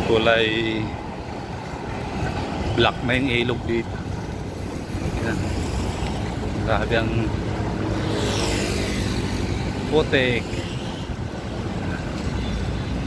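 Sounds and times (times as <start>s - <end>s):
road traffic: 0.0s - 13.0s
vehicle passing close by: 4.1s - 12.3s.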